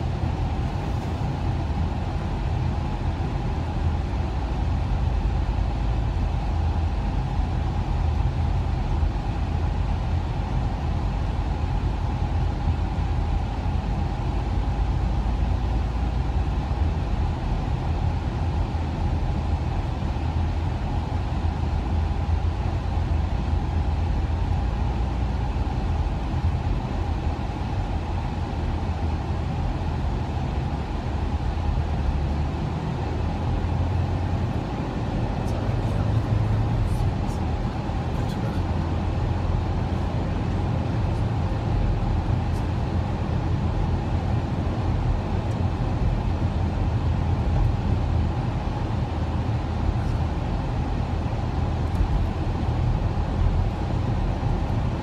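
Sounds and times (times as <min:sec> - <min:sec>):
car cabin road and engine noise: 0:00.0 - 0:55.0.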